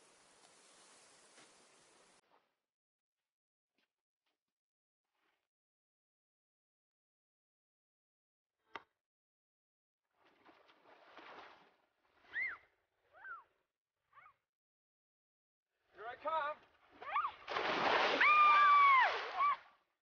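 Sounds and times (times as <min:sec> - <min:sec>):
long high scream: 0:18.2 - 0:19.6.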